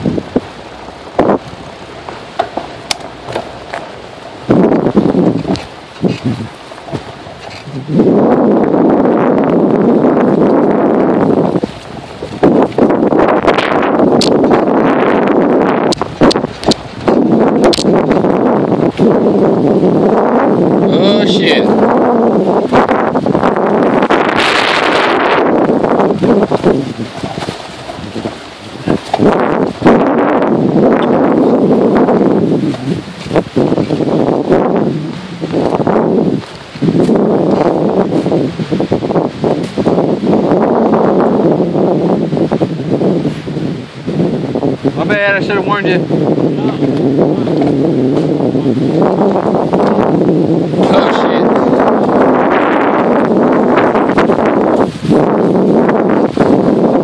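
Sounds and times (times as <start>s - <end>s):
wind noise on microphone: 0.0s - 57.0s
knocks from rough ground: 2.4s - 3.9s.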